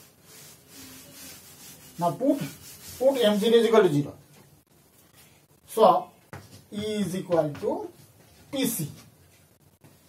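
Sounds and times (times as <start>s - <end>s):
duster wiping chalk blackboard: 0.0s - 4.0s.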